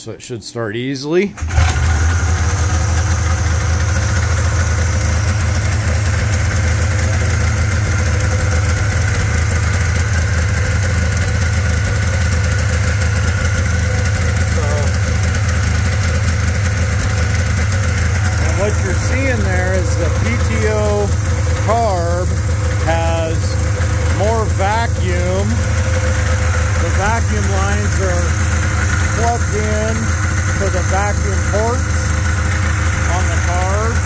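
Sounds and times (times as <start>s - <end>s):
snowmobile engine fast idling: 1.5s - 34.0s.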